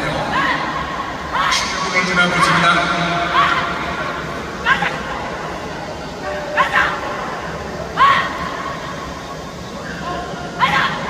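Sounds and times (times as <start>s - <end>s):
murmur of background noise: 0.0s - 11.0s.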